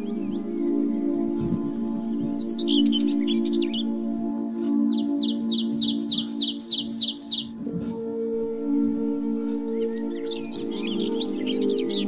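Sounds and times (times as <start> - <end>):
bird twittering and chirping: 0.0 - 8.0, 9.0 - 12.0
ambient music low held tones: 0.0 - 12.0.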